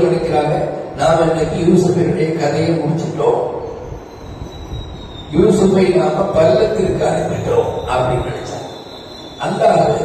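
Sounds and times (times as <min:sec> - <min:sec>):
man talking: 0:00.0 - 0:03.6, 0:05.3 - 0:08.7, 0:09.4 - 0:10.0
electric fan whirring: 0:00.0 - 0:10.0
faint high whine: 0:00.0 - 0:10.0.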